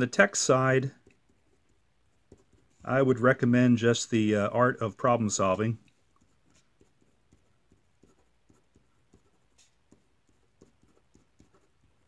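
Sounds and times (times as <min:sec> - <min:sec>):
marker writing strokes: 0:00.0 - 0:03.2, 0:04.8 - 0:12.0.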